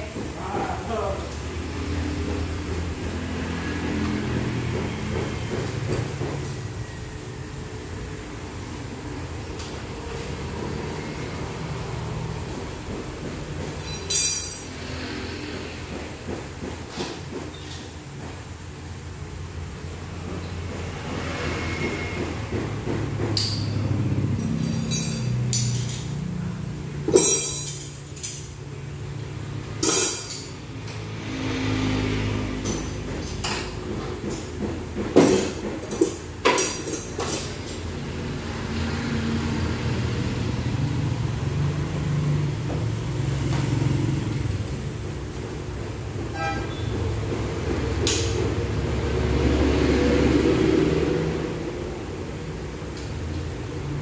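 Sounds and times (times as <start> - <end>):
low workshop hum: 0.0 - 54.0
wrench clinking on metal: 13.8 - 14.7, 23.4 - 23.8, 24.4 - 26.2, 27.1 - 28.5.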